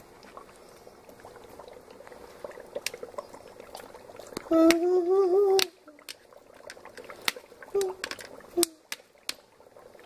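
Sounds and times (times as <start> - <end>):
dry ice bubbling in water: 0.0 - 10.0
foam bubbles popping: 0.0 - 10.0.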